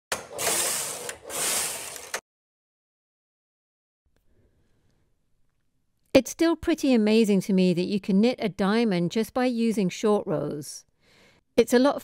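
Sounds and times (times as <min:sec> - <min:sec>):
knitting machine carriage rattling: 0:00.2 - 0:02.2.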